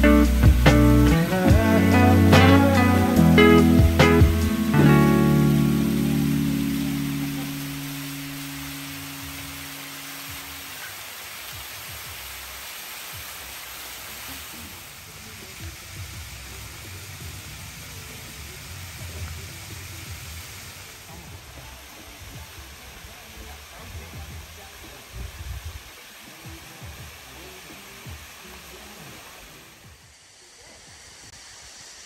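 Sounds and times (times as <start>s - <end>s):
held music chord: 0.0s - 10.6s
waterfall splashing on rock: 3.8s - 32.0s.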